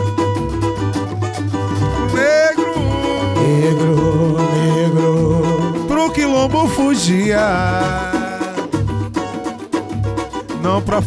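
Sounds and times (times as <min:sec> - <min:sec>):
samba music: 0:00.0 - 0:11.0
person singing: 0:01.8 - 0:09.1, 0:10.6 - 0:11.0.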